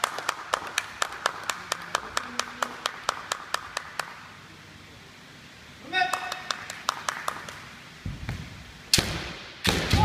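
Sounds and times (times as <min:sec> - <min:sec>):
hands clapping: 0:00.0 - 0:04.2, 0:06.0 - 0:07.7.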